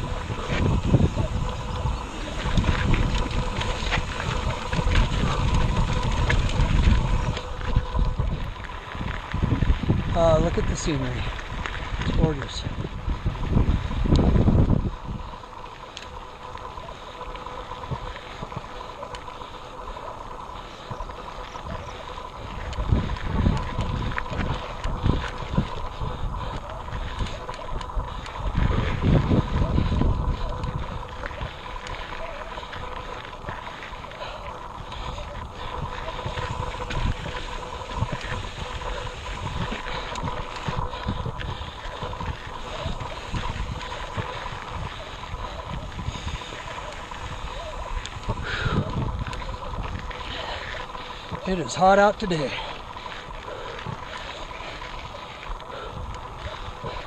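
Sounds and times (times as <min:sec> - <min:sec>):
wind gusts on microphone: 0:00.0 - 0:16.7, 0:20.2 - 0:57.0
bike rolling and rattling: 0:00.0 - 0:57.0.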